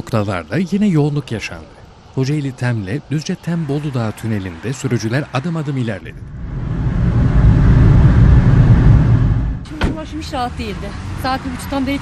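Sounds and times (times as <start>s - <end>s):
traffic rumble in road tunnel: 0.0s - 12.0s.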